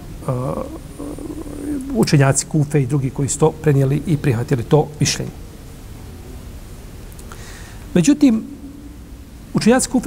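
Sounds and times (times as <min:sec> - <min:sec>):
man making hesitation sounds: 0:00.2 - 0:04.5.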